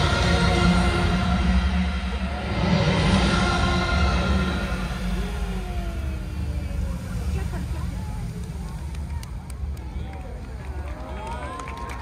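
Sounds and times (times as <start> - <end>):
crowd chattering: 0.0 - 12.0
steady low rumble: 0.0 - 12.0.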